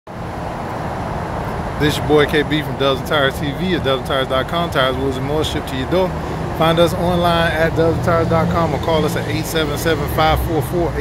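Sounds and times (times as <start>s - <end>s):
man speaking: 1.8s - 11.0s.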